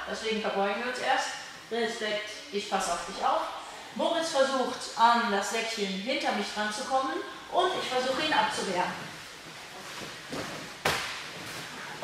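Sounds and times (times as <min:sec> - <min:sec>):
sharp slap on a mat: 0:10.8 - 0:11.4.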